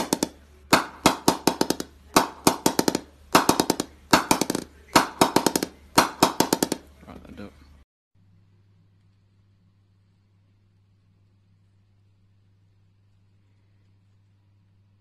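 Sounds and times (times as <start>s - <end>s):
mallet tapping cricket bat: 0.0s - 6.8s.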